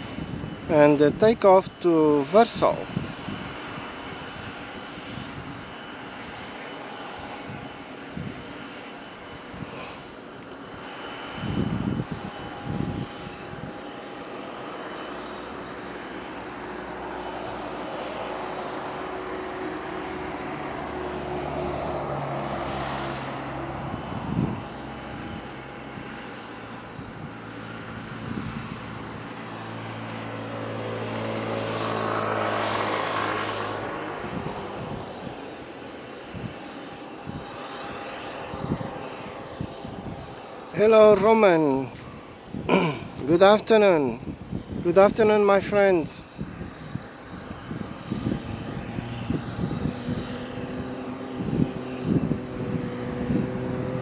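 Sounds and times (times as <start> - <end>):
jet engines whine and rumble: 0.0 - 54.0.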